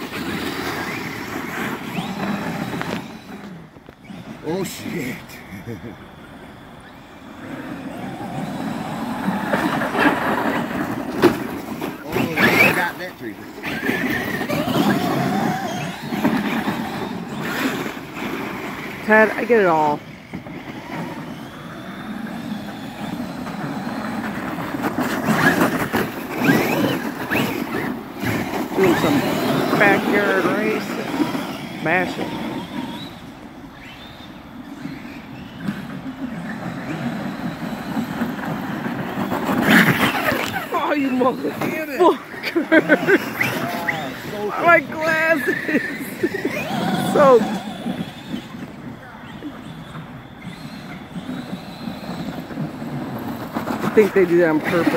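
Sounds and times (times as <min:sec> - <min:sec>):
electric motors whining: 0:00.0 - 0:54.9
tires churning through snow: 0:00.0 - 0:54.9
toy truck tumbling: 0:00.0 - 0:54.9
tyre and ground noise: 0:00.0 - 0:54.9.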